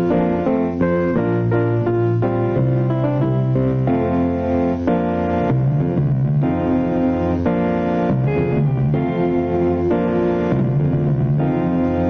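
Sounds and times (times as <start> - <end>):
electric bass guitar: 0.0 - 12.0
organ-like keyboard chords: 0.0 - 12.0.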